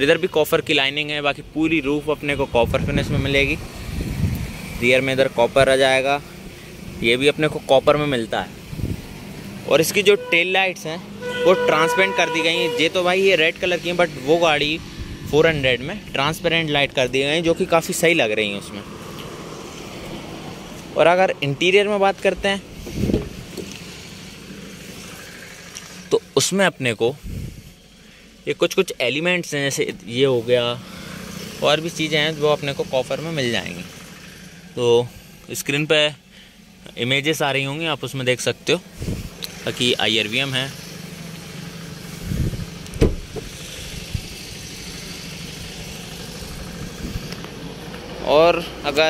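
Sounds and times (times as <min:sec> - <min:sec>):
knocks and thumps: 0:22.9 - 0:23.7.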